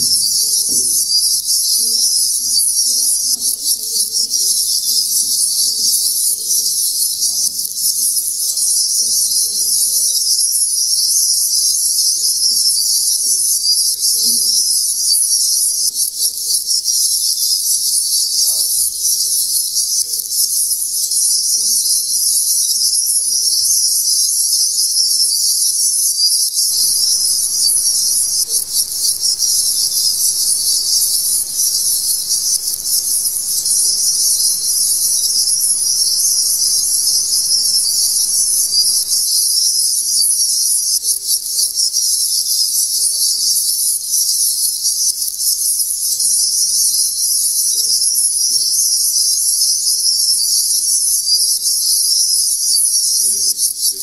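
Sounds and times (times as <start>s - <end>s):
faint low murmur: 26.7s - 39.2s
shrill high-pitched hiss: 26.7s - 39.4s.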